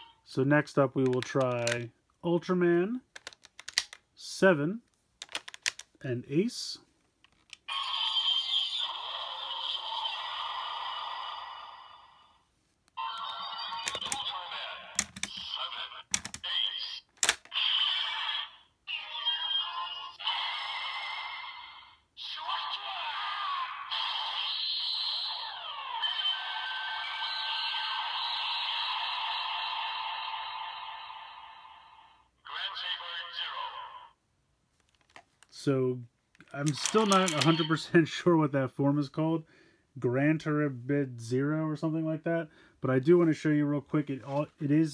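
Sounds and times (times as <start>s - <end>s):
plastic toy clicks: 1.0s - 1.9s, 3.1s - 4.0s, 5.2s - 6.0s, 13.8s - 16.5s, 17.1s - 17.6s, 36.4s - 37.7s
toy electronic voice and music: 7.7s - 12.2s, 13.0s - 34.2s, 36.5s - 37.8s.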